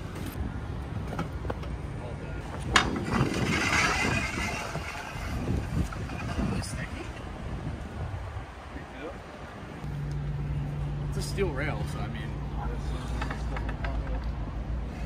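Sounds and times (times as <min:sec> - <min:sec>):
traffic rumble: 0:00.0 - 0:15.0
scooter scraping along steel handrail: 0:02.5 - 0:07.3.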